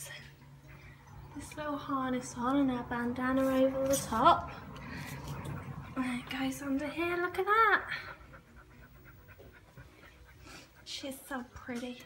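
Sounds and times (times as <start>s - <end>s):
dog panting: 2.7s - 12.0s.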